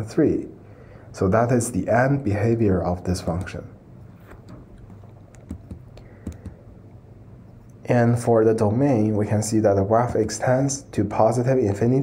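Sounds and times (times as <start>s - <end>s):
low steady hum: 0.0s - 12.0s
computer keys clicking: 4.2s - 6.6s.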